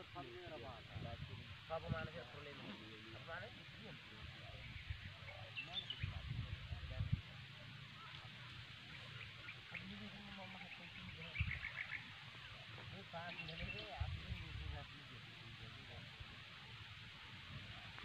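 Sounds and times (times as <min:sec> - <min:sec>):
wind gusting over microphone: 0:00.0 - 0:02.3, 0:05.8 - 0:07.3, 0:13.4 - 0:14.8
faint voices talking: 0:00.0 - 0:18.0.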